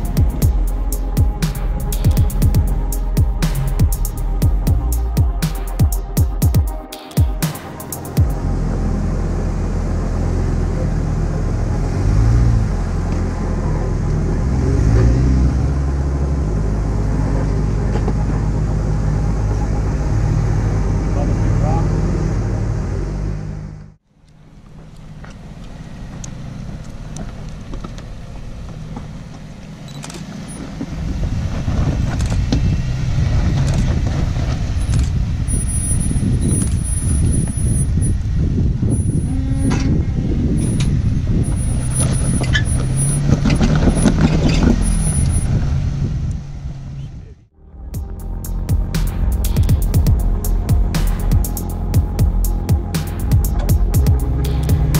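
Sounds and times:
car engine at low revs: 8.0s - 54.9s.

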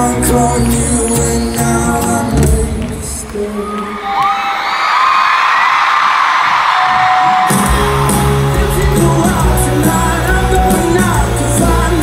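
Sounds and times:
live rock band: 0.0s - 3.4s, 6.6s - 12.0s
crowd screaming and cheering: 0.0s - 12.0s.

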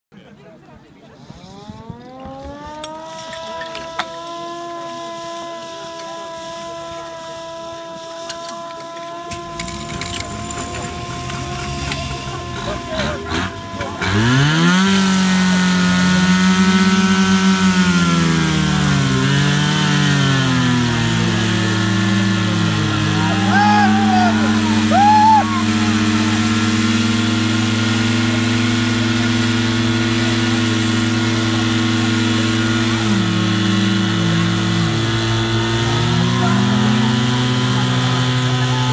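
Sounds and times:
pump engine running hard: 1.3s - 38.9s
people shouting: 22.5s - 26.4s.

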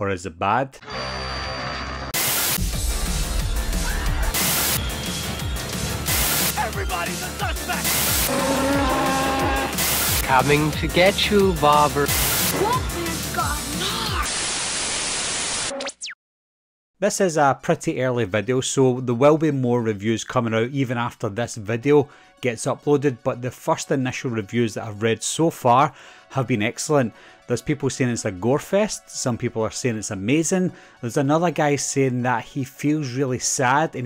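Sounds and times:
music: 0.8s - 14.3s, 17.5s - 34.0s
tv static burst: 2.2s - 2.7s, 4.3s - 5.1s, 6.0s - 10.5s, 11.9s - 12.7s, 14.2s - 15.9s.

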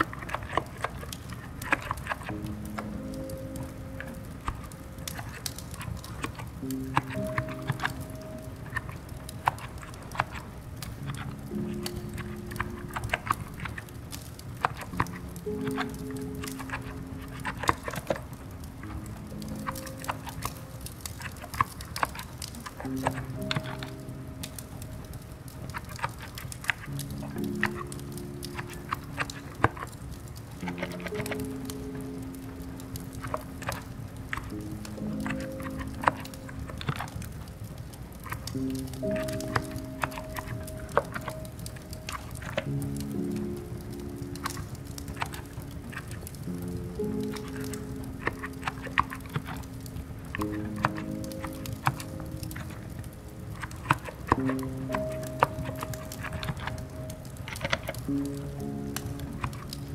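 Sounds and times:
slow ambient music: 0.0s - 59.9s
soft keyboard keystrokes: 0.0s - 59.9s.

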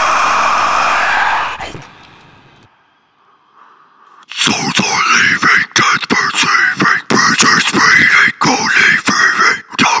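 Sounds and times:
harsh metal vocal scream: 0.0s - 1.9s.

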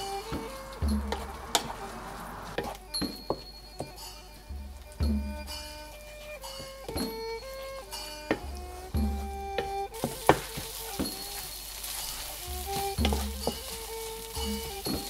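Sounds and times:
wooden spatula scraping pan: 9.6s - 15.0s
curry paste sizzling in oil: 9.9s - 15.0s.

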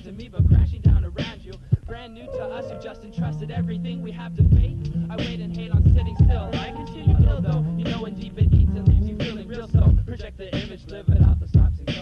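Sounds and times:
hip hop beat with heavy kicks: 0.0s - 12.0s
rapped vocals: 0.0s - 12.0s.

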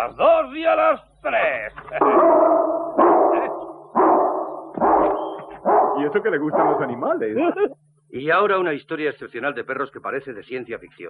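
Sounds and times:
big dog barking: 2.0s - 7.2s.

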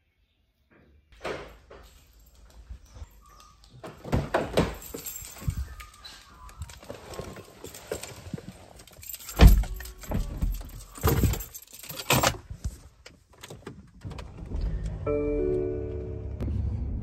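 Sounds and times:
clicks and rustles getting into car: 1.2s - 15.0s.

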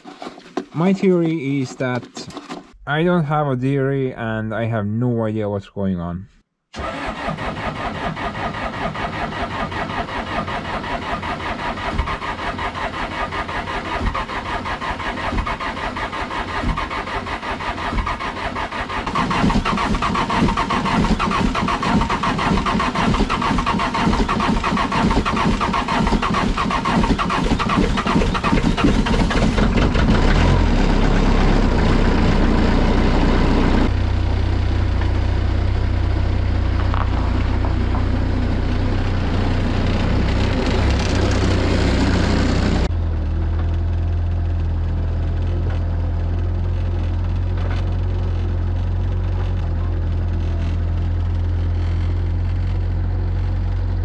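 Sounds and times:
diesel engine starting and idling: 6.8s - 54.0s.

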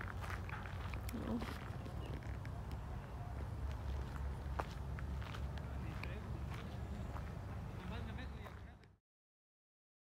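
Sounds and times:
footsteps on grass: 0.0s - 2.4s, 3.4s - 8.6s.

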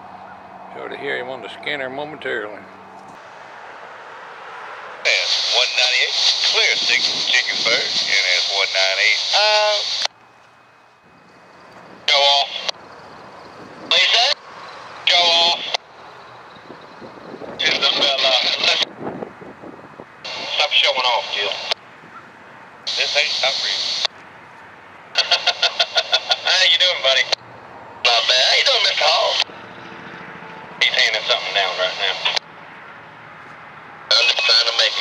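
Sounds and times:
radio chatter over a scanner: 5.0s - 10.1s, 11.7s - 13.0s, 13.8s - 14.4s, 15.0s - 15.9s, 17.5s - 18.9s, 20.2s - 24.2s, 25.1s - 27.4s, 28.0s - 29.5s, 30.8s - 32.5s, 34.1s - 35.0s.

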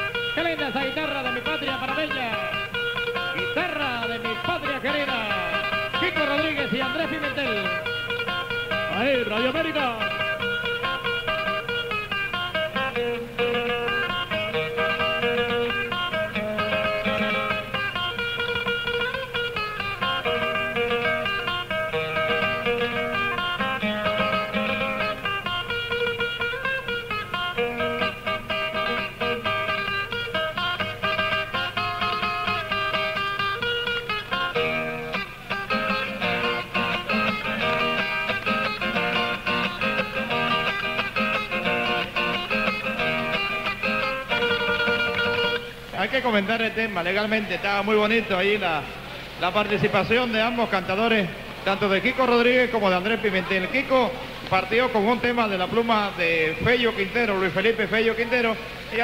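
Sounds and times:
guitar playing plucked melody: 0.0s - 59.0s.

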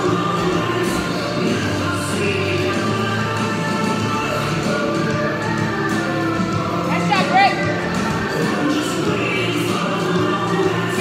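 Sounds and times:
music with singing voices: 0.0s - 11.0s.

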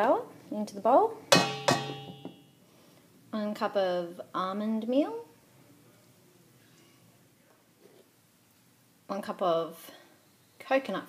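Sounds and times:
measuring cup knocking metal bowl: 1.3s - 2.4s
metal bowl ringing: 1.3s - 2.5s.

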